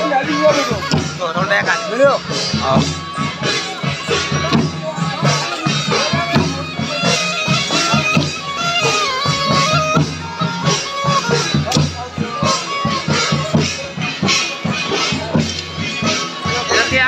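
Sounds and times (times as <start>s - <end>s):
drums in quick rhythm: 0.0s - 17.0s
reed pipe melody: 0.0s - 17.0s.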